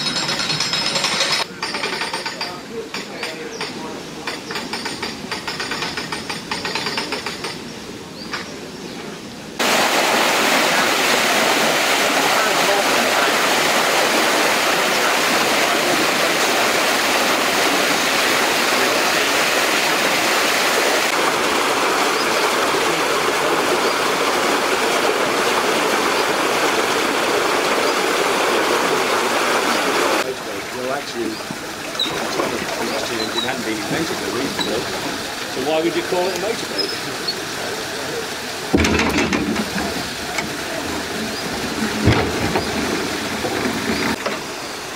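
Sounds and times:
water rushing into lock chamber: 9.6s - 44.9s.

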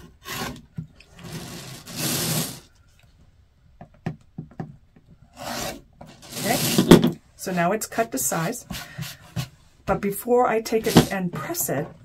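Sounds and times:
rotary cutter scraping through fabric: 5.4s - 6.9s.

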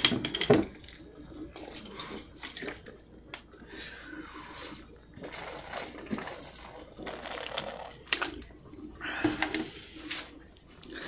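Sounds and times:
person drinking and swallowing: 4.6s - 11.0s.

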